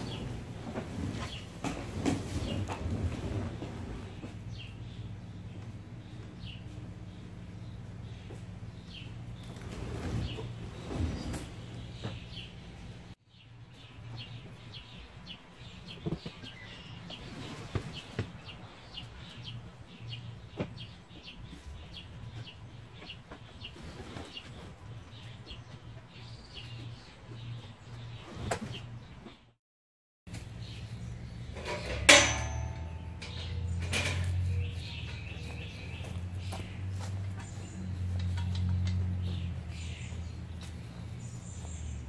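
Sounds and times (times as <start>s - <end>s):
small birds chirping: 4.0s - 29.5s, 33.0s - 42.0s.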